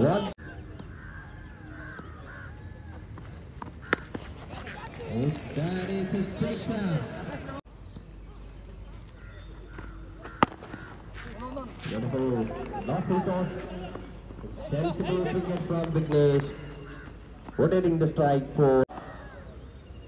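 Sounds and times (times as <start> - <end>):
players shouting: 1.4 - 7.6, 9.8 - 19.6
cricket bat striking ball: 3.6 - 4.7, 9.7 - 13.2.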